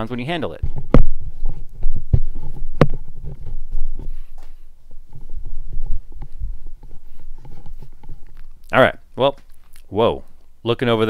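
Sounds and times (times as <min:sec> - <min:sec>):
headset handling thumps and rubbing: 0:00.6 - 0:08.6.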